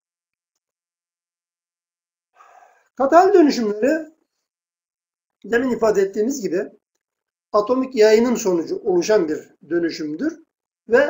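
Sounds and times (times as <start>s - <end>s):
man's faint in-breath: 2.4s - 2.9s.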